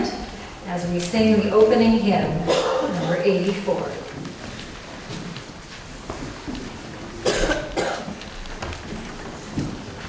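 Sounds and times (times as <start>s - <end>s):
person coughing: 2.4s - 3.2s, 7.2s - 8.2s.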